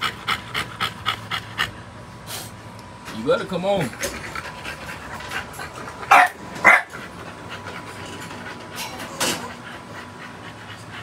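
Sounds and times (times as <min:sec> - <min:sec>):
puppy panting: 0:00.0 - 0:02.6, 0:03.7 - 0:11.0.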